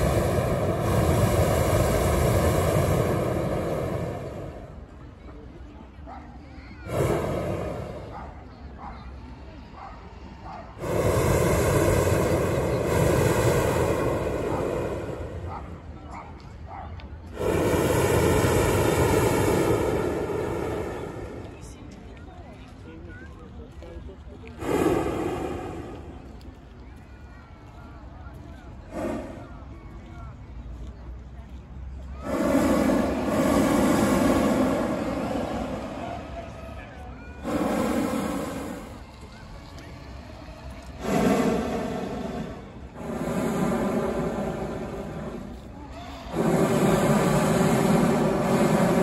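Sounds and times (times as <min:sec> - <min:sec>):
propane burner blasts: 0:00.0 - 0:05.2, 0:06.8 - 0:08.5, 0:10.7 - 0:16.1, 0:17.3 - 0:21.9, 0:24.6 - 0:26.6, 0:28.8 - 0:30.1, 0:32.1 - 0:49.0.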